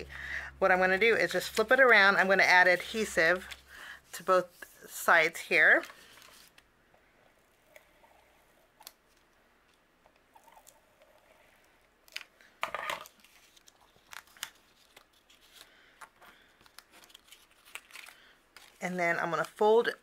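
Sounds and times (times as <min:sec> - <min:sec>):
cardstock rustling: 0:12.8 - 0:19.6.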